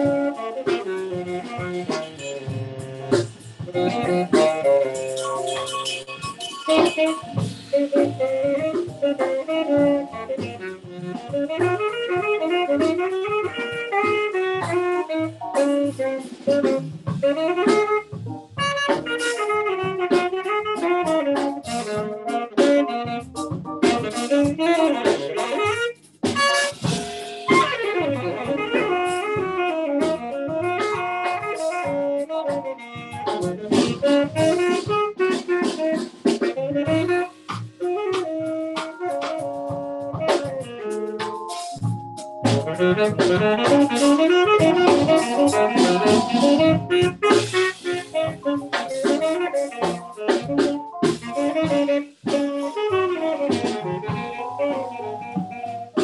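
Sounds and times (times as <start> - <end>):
drum kit: 0.0 - 56.0
saxophone solo: 0.0 - 56.0
walking bass: 0.0 - 56.0.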